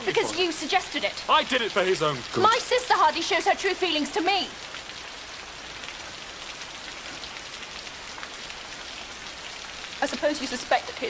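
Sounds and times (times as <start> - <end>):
heavy rain: 0.0 - 11.0.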